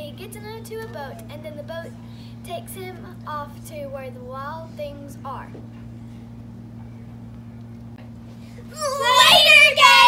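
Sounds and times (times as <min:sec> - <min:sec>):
girls yelling high-pitched: 0:08.7 - 0:10.0.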